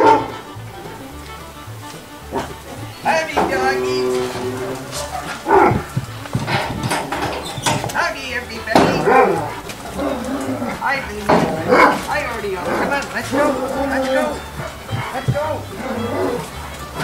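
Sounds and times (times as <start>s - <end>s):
dogs barking: 0.0s - 17.0s.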